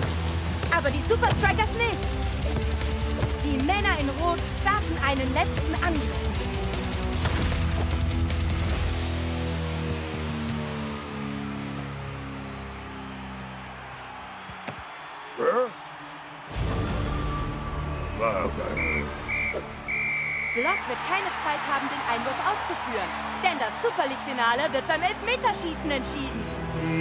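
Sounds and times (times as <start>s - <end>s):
crowd cheering: 9.8s - 26.2s
dramatic cartoon music: 16.5s - 19.9s
referee whistle: 17.2s - 20.9s.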